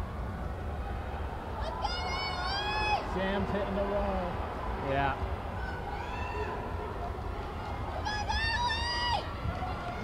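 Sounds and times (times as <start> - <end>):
murmur of arena crowd: 0.0 - 10.0
high-pitched cheering yell: 1.6 - 3.2.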